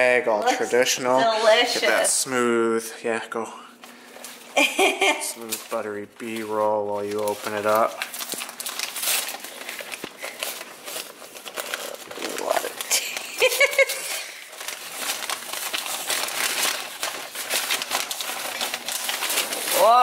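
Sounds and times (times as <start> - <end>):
paper wrapping crinkling: 3.7 - 20.0.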